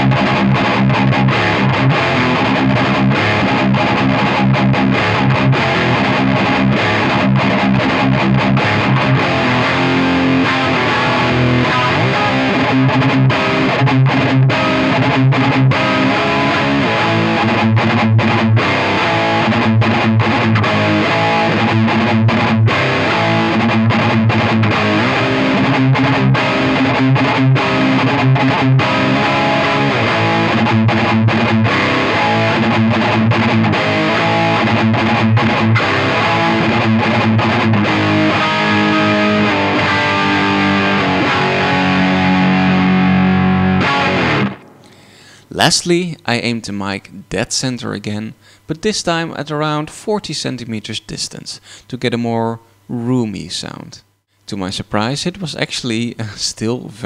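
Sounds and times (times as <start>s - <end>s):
distorted electric guitar riff: 0.0s - 57.0s.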